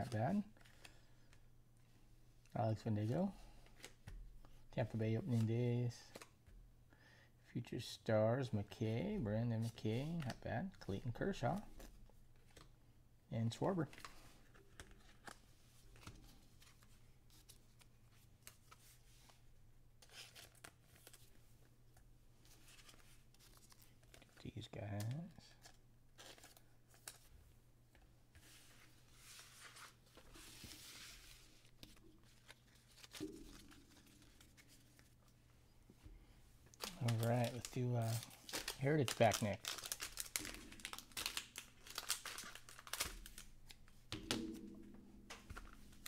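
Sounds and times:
cards clicking and rustling: 0:05.3 - 0:06.5, 0:13.8 - 0:19.4, 0:20.0 - 0:21.4, 0:22.5 - 0:27.3, 0:27.9 - 0:35.4, 0:36.7 - 0:44.6
plastic wrapping crinkling and tearing: 0:36.8 - 0:43.9.

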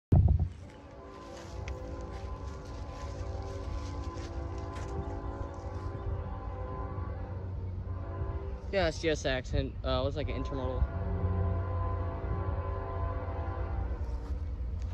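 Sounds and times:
distant diesel locomotives humming: 0:00.4 - 0:14.9.

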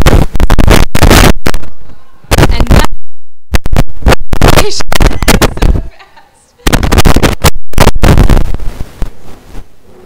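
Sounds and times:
distorted rushing noise: 0:00.0 - 0:10.0.

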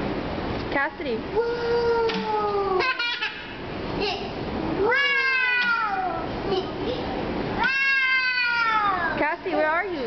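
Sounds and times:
child squealing: 0:04.8 - 0:06.6, 0:07.6 - 0:09.2.

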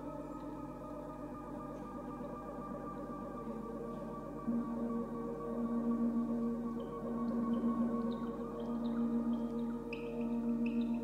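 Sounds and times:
ambient synthesizer drone: 0:00.0 - 0:11.0.

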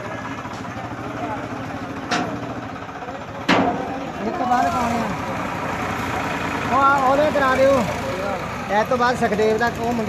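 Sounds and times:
crowd voices: 0:00.0 - 0:10.0
tractor diesel engine running: 0:00.0 - 0:10.0.

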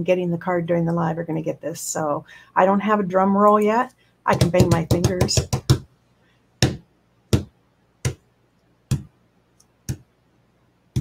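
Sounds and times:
fingers tapping on tabletop: 0:04.3 - 0:05.9, 0:06.6 - 0:08.2, 0:08.9 - 0:09.1.

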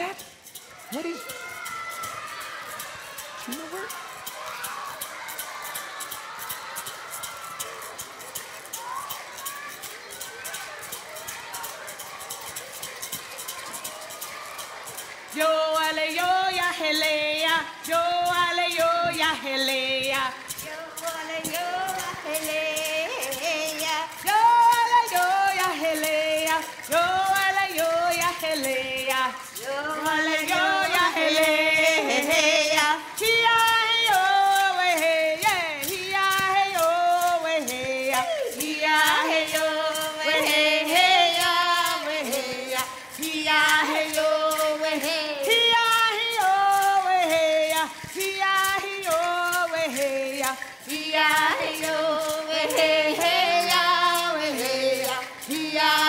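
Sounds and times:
hand drum beat: 0:00.0 - 0:56.0
women singing vocables: 0:15.0 - 0:56.0.

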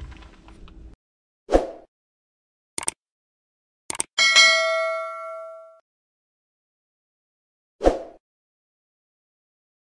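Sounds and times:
notification bell ding: 0:04.2 - 0:05.8.

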